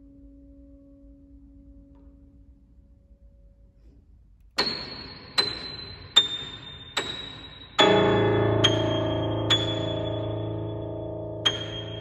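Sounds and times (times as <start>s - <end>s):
loud high piano note: 7.8s - 12.0s.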